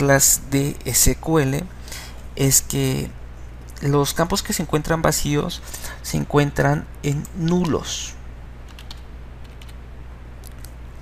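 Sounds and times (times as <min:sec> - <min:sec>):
steady low hum: 0:00.0 - 0:11.0
keyboard keystrokes: 0:08.7 - 0:09.8.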